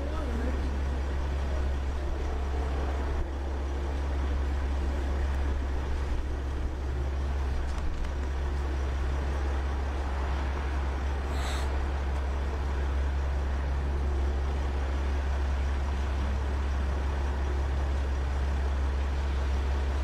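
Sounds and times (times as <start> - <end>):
road noise: 0.0 - 20.0
van engine idling: 0.0 - 20.0.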